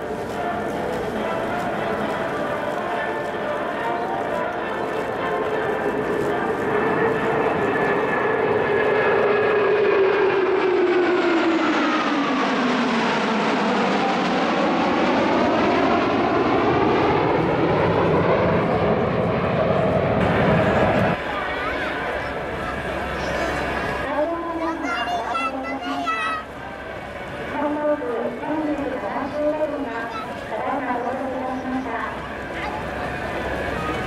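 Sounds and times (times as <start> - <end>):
fighter jets flying past: 0.0 - 34.0.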